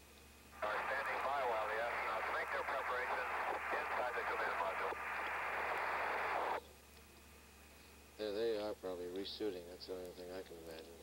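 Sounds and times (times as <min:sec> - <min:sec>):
faint steady hum: 0:00.0 - 0:11.0
radio static hiss: 0:00.5 - 0:06.6
faint voice on radio: 0:00.6 - 0:06.6.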